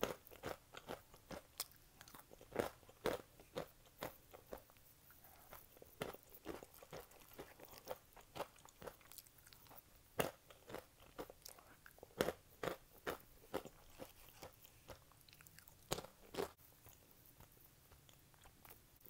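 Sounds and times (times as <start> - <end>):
crunching and chewing snacks: 0.0 - 19.0.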